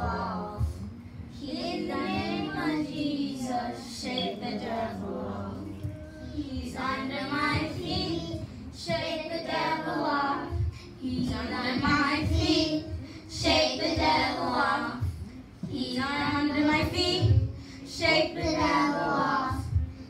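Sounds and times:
girls choir singing gospel: 0.0 - 20.0
low thumps: 5.6 - 18.8.

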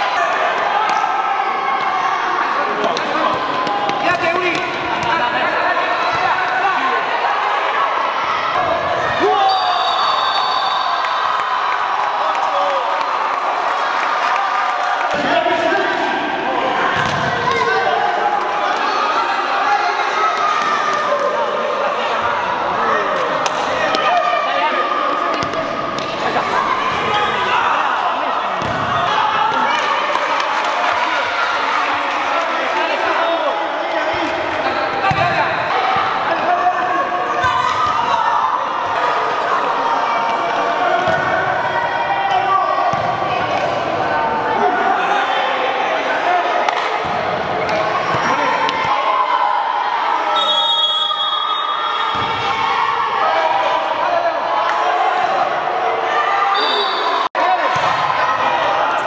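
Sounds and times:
people shouting in a hall: 0.0 - 59.0.

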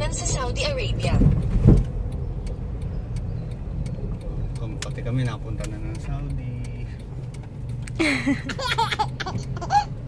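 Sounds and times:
car cabin road noise: 0.0 - 10.0
turn signal ticking: 0.0 - 10.0.

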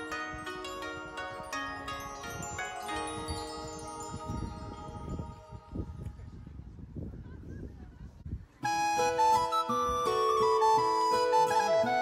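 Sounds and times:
wind rumble on microphone: 0.0 - 10.5.

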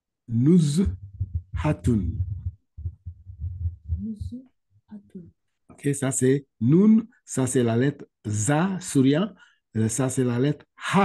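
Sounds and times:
low rumble: 0.8 - 4.4.

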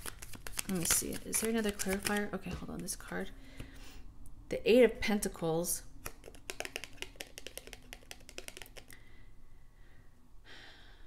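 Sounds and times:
cards flicking: 0.0 - 2.3, 6.0 - 9.0.

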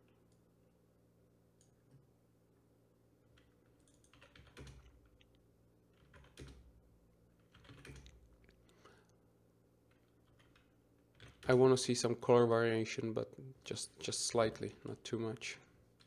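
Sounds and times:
low steady hum: 0.0 - 16.0
keyboard and mouse clicking: 3.4 - 5.4, 7.4 - 8.6.

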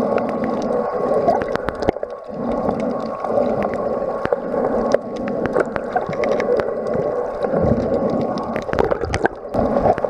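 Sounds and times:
underwater rush of water: 0.0 - 10.0.

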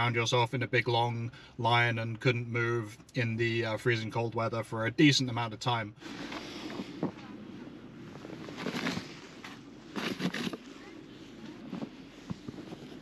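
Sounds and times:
footsteps crunching in snow: 8.1 - 13.0.

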